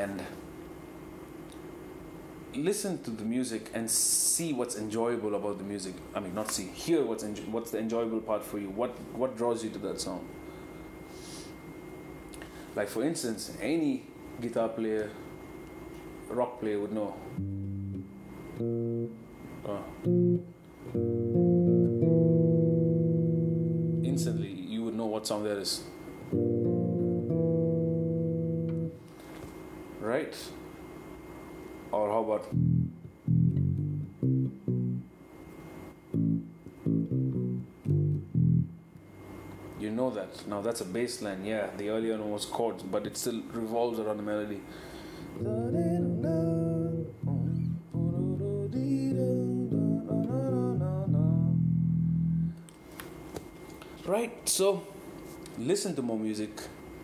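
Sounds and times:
electric bass chords: 17.3 - 24.6, 26.2 - 29.1, 32.5 - 35.2, 36.1 - 39.2, 45.4 - 52.6
person singing: 45.4 - 51.7.

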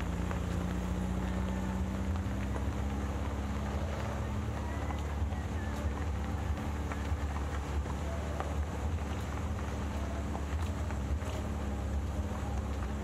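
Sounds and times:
van engine rumble: 0.0 - 13.0.

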